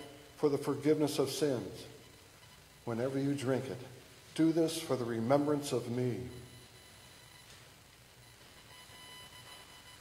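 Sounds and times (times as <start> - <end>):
man's voice with room echo: 0.0 - 2.1, 2.8 - 6.7
faint steady hum: 0.0 - 10.0.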